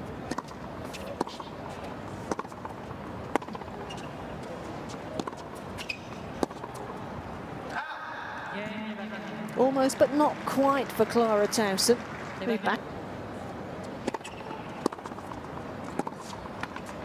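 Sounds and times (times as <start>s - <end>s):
steady background hum: 0.0s - 17.0s
racket striking tennis ball: 0.2s - 4.1s, 4.9s - 7.0s, 14.0s - 17.0s
tennis ball bouncing: 0.2s - 7.0s, 13.8s - 17.0s.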